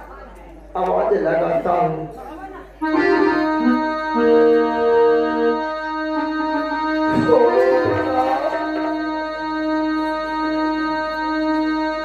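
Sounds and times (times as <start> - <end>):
steady keyboard chord: 2.8 - 12.0.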